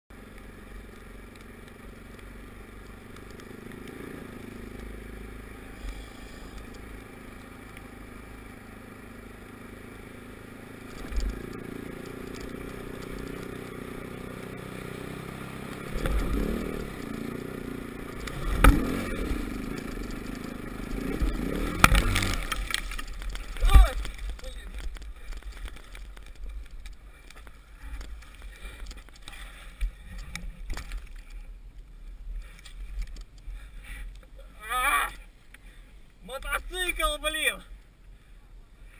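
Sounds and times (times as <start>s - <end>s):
dirt bike engine: 0.1s - 38.9s
bike thumping through ice: 18.1s - 29.6s.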